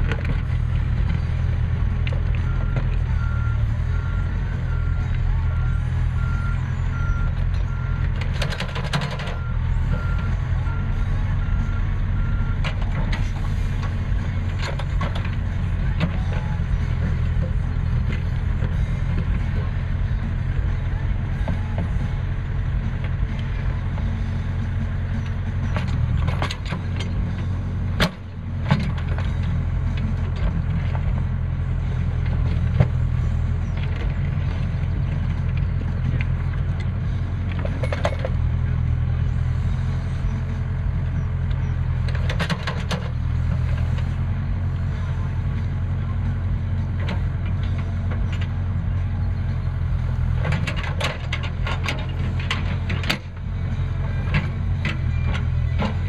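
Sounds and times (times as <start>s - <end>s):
diesel engine under load: 0.0s - 56.0s.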